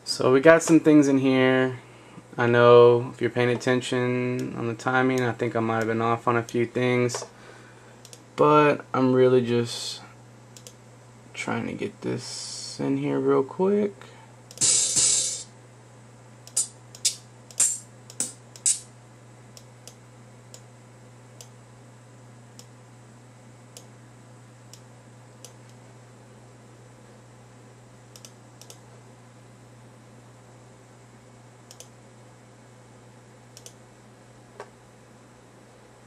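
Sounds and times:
low steady hum: 0.0 - 36.0
short loud hiss: 14.6 - 15.5
keyboard and mouse clicks: 28.2 - 28.8, 31.7 - 31.9, 33.6 - 33.8.

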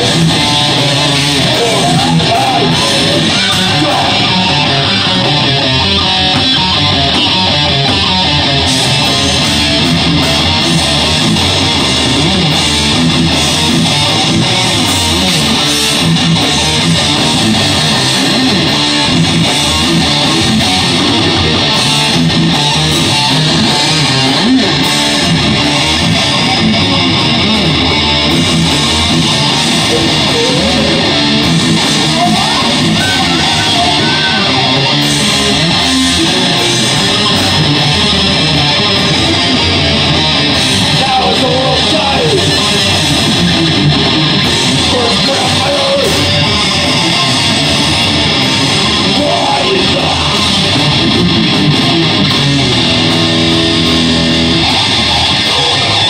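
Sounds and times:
bass guitar: 0.0 - 56.0
drums: 0.0 - 56.0
electric guitar: 0.0 - 56.0.

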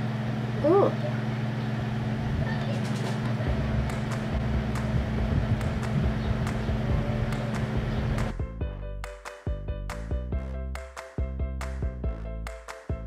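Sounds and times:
steady low hum: 0.0 - 8.8.

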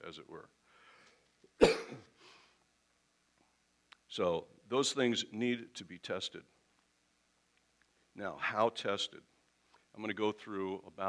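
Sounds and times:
man coughing: 1.6 - 2.1.

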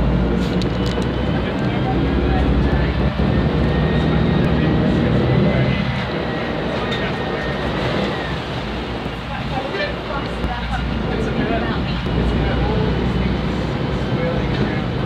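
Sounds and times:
bus diesel engine running: 0.0 - 15.0.

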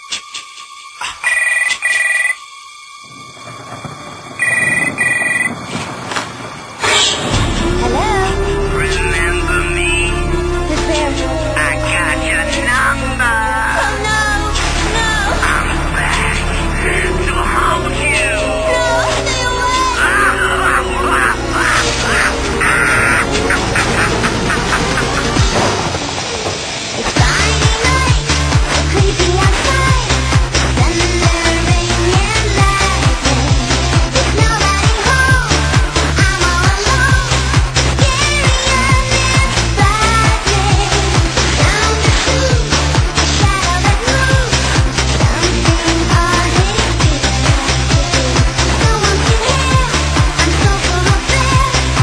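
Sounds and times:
telephone double ring: 1.3 - 2.4, 4.4 - 5.6
low rumbling haze: 3.0 - 52.0
person cackling laugh: 23.0 - 25.6.

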